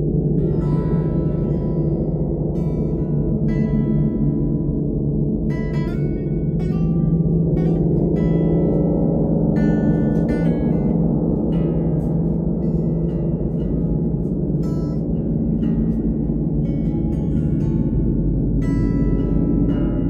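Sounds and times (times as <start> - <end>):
gongs droning: 0.0 - 20.0
acoustic guitar strummed: 5.4 - 20.0.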